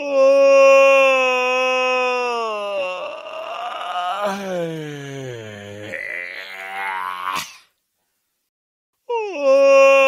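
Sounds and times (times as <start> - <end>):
person yawning: 2.5 - 7.7.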